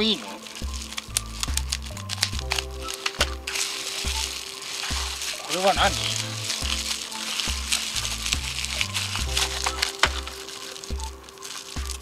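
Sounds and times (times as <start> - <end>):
background music with bass: 0.0 - 12.0
bubble wrap crinkling: 0.0 - 12.0.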